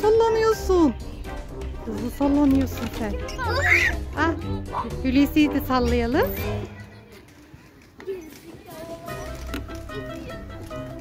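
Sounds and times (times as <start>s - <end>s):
background music with low beat: 0.0s - 6.9s.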